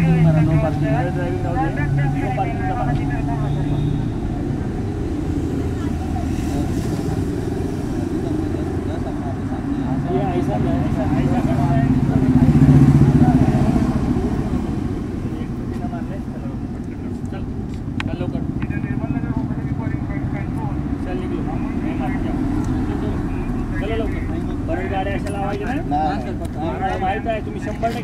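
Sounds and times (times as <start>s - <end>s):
murmur of voices: 0.0s - 28.0s
passing traffic: 0.0s - 28.0s
vehicle passing close: 0.0s - 28.0s.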